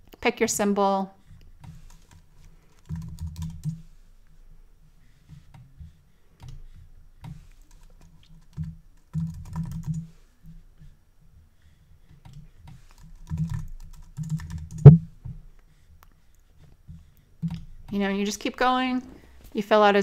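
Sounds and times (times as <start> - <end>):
typing on computer keyboard: 1.7 - 3.9, 7.3 - 10.1, 12.2 - 15.0.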